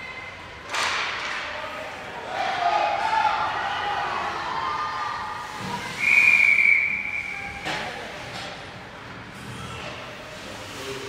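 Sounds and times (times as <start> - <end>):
raised voices in arena: 0.0 - 11.0.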